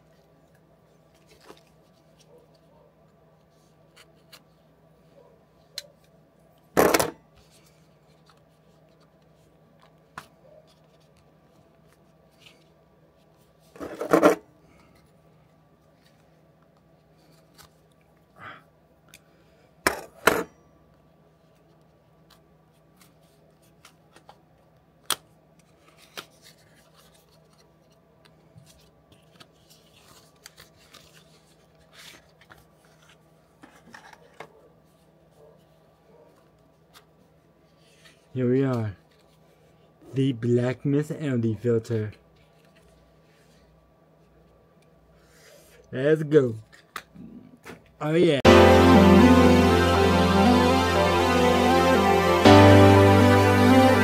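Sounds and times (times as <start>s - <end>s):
faint steady hum: 0.0s - 53.6s.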